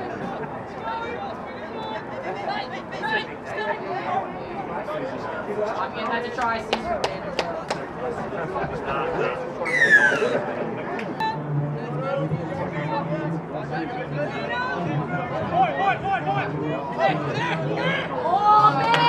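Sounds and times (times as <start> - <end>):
people chattering and calling out: 0.0 - 19.0.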